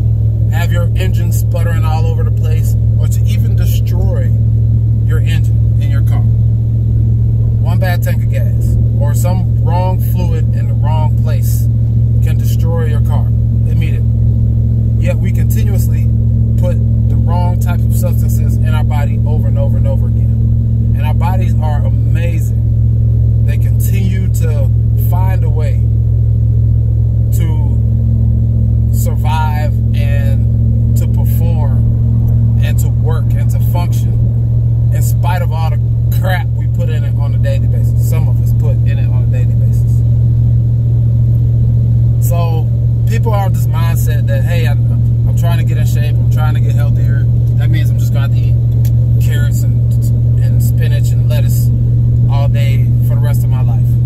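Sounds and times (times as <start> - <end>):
road noise: 0.0 - 54.0
truck engine drone: 0.0 - 54.0
man talking: 0.5 - 4.4, 5.0 - 6.3, 7.6 - 14.1, 15.0 - 22.6, 23.4 - 25.9, 27.3 - 27.8, 28.9 - 31.9, 32.6 - 34.3, 34.9 - 40.0, 42.2 - 51.7, 52.3 - 54.0.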